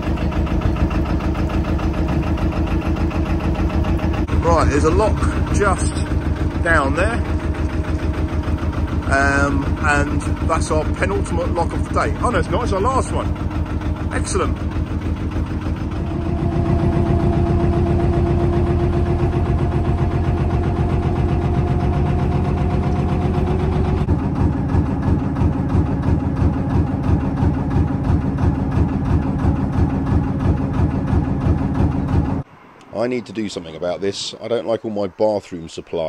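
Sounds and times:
diesel boat engine chugging: 0:00.0 - 0:36.0.

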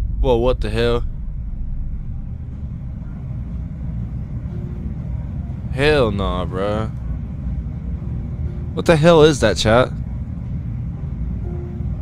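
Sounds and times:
electric fan running: 0:00.0 - 0:12.0.

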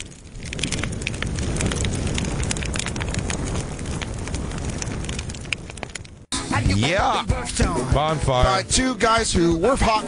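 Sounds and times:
fire crackling with pops: 0:00.0 - 0:06.4.

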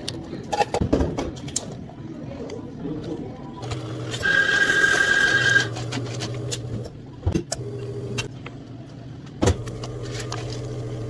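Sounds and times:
coffee grinder whirring: 0:03.6 - 0:06.8.

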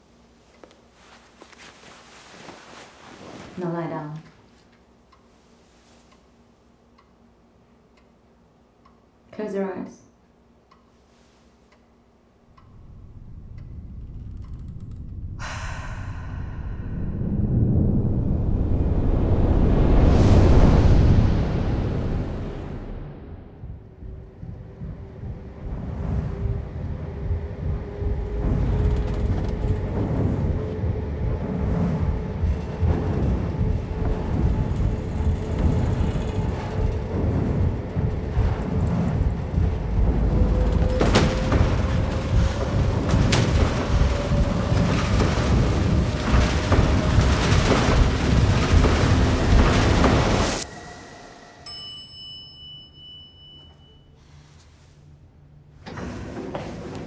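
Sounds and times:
film score drone: 0:12.4 - 0:53.1
bell-like ringing tone: 0:50.7 - 0:54.3.

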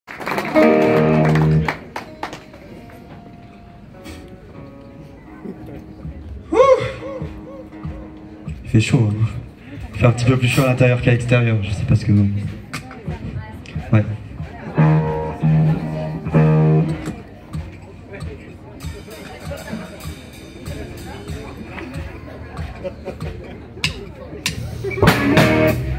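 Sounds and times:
electric guitar chord: 0:00.5 - 0:06.1
picked guitar notes: 0:00.5 - 0:11.0, 0:13.9 - 0:22.7, 0:24.5 - 0:25.9
electric guitar note: 0:00.6 - 0:01.7, 0:14.8 - 0:17.1.

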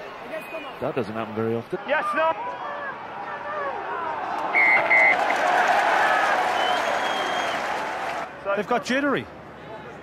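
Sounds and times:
stadium crowd noise: 0:00.0 - 0:10.0
referee's whistle blasts: 0:04.5 - 0:05.2.

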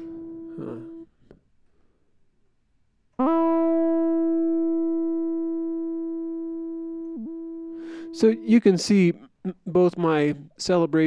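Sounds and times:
synthesizer sustained note: 0:03.2 - 0:08.6.

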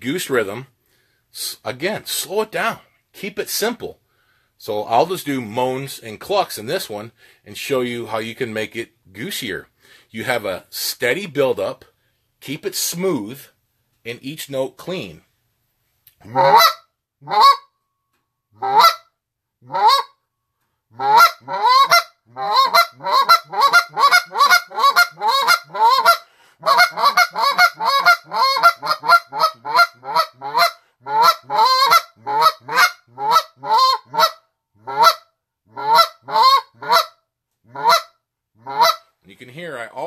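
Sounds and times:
goose call moans and clucks: 0:16.2 - 0:17.6, 0:18.6 - 0:19.0, 0:19.6 - 0:20.1, 0:20.9 - 0:39.1.

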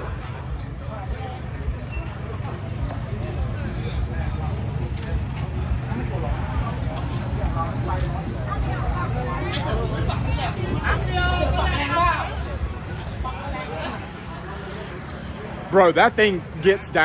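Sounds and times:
vehicle engines running: 0:00.0 - 0:17.0
voices chattering: 0:00.0 - 0:17.0.

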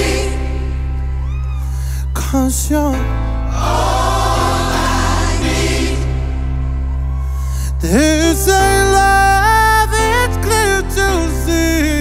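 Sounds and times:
gospel choir singing: 0:00.0 - 0:01.4, 0:03.3 - 0:09.5
bass and keyboard chords: 0:00.0 - 0:12.0.

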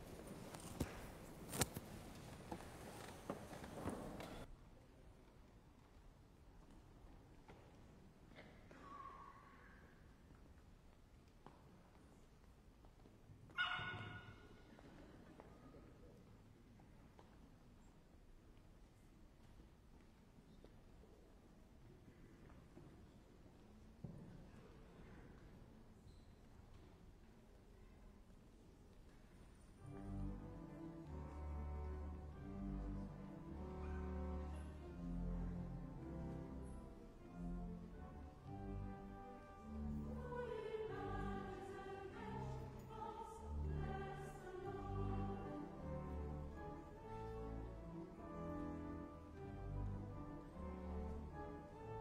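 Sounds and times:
church choir singing: 0:39.6 - 0:46.5.

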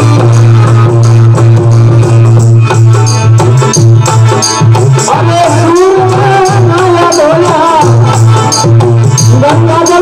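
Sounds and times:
harmonium holding low note: 0:00.0 - 0:05.1
percussion beat: 0:00.0 - 0:10.0.

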